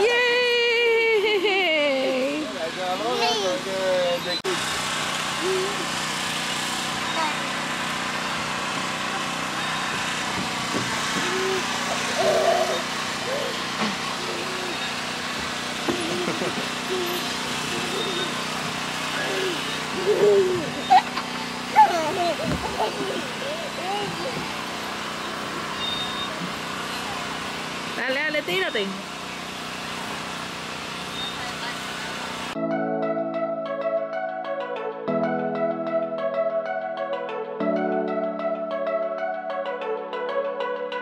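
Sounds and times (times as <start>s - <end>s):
low mechanical hum: 0.0s - 32.6s
young children vocalizing: 5.4s - 5.9s, 11.2s - 13.6s, 16.0s - 18.4s, 19.2s - 24.5s.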